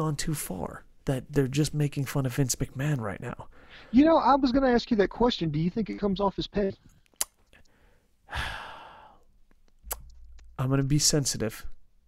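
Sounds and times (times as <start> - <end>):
man sighing: 8.3 - 9.3.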